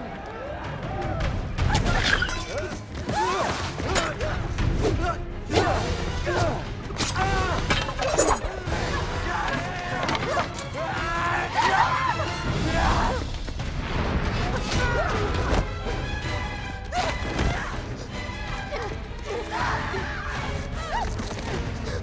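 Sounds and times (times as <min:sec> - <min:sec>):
people yelling and screaming: 0:00.0 - 0:13.5, 0:14.2 - 0:16.1, 0:16.9 - 0:22.0.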